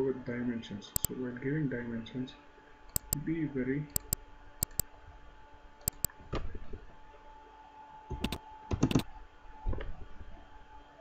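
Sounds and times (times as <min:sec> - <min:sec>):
computer keyboard keystrokes: 0:02.9 - 0:03.2, 0:04.0 - 0:04.8, 0:05.9 - 0:06.1, 0:08.1 - 0:09.0.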